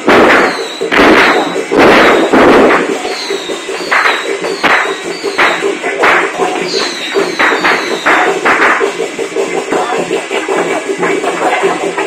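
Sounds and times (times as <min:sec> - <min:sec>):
firecrackers bursting: 0:00.0 - 0:08.8.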